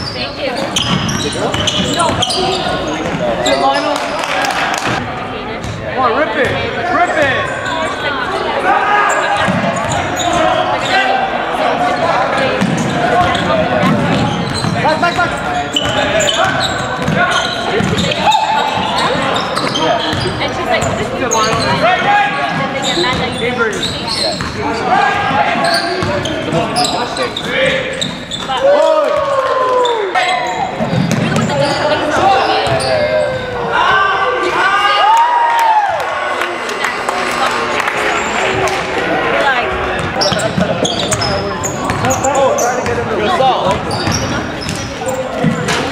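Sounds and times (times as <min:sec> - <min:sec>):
echoing voices: 0:00.0 - 0:45.9.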